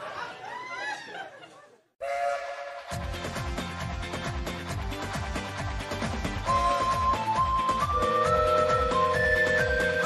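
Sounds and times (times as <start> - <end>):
steam locomotive whistle: 2.0 - 3.0, 6.5 - 10.0
upbeat music with steady beat: 2.8 - 10.0.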